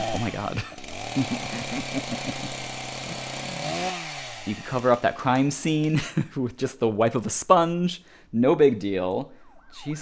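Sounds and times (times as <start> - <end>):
man laughing: 0.0 - 4.0, 5.8 - 6.4.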